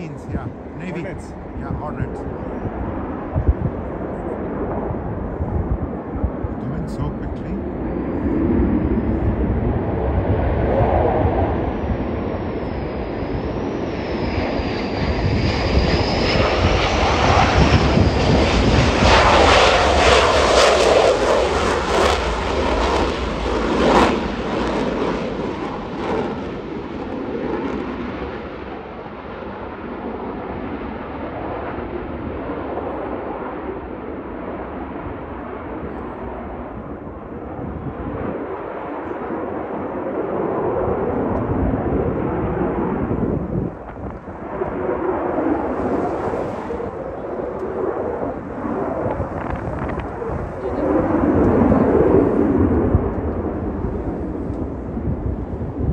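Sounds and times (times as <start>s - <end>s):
high jet whine: 0.0s - 55.9s
jet engines roaring: 0.0s - 55.9s.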